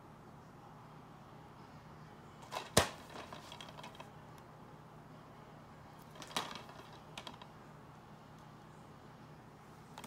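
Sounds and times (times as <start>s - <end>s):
light plastic rattles: 2.4s - 4.1s, 6.0s - 7.5s.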